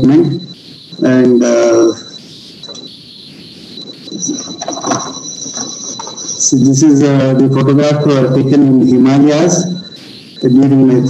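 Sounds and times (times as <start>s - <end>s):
high-pitched electronic whine: 0.0s - 11.0s
higher electronic tone: 0.0s - 11.0s.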